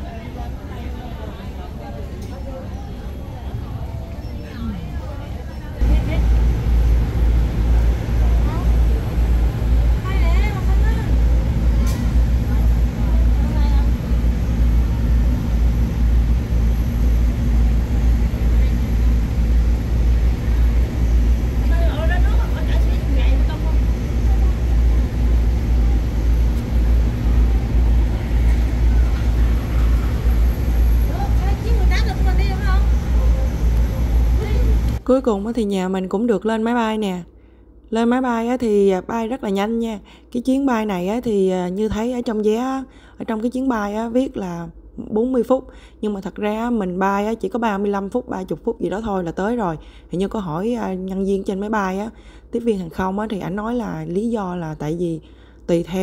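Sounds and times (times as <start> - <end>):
crowd chatter: 0.0 - 6.6, 7.6 - 15.5, 18.3 - 35.0
buses idling: 0.0 - 35.5.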